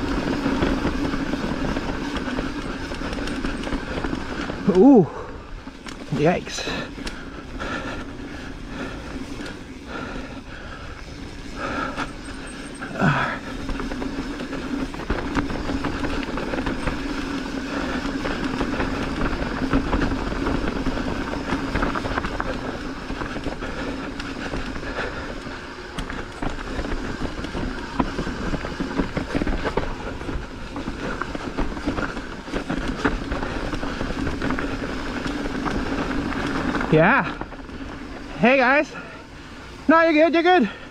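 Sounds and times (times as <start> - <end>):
bike chain and frame rattling: 0.0 - 40.9
bike tyres rumbling over dirt: 0.0 - 40.9.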